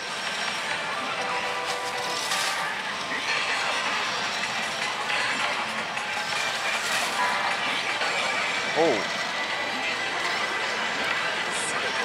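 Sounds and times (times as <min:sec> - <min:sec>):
slot machines running: 0:00.0 - 0:12.0.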